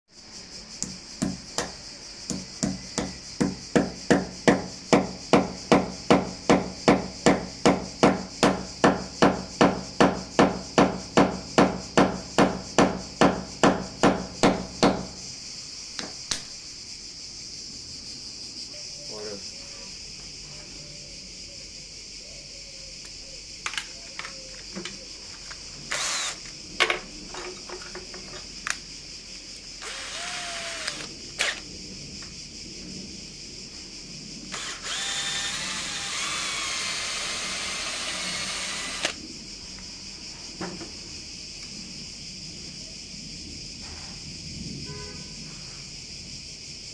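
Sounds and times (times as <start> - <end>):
small clicks and knocks: 23.0 - 25.6.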